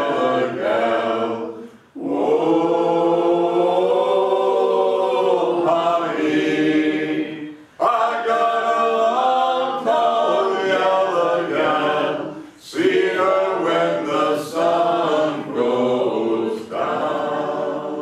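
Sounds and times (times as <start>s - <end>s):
unaccompanied group singing: 0.0s - 18.0s.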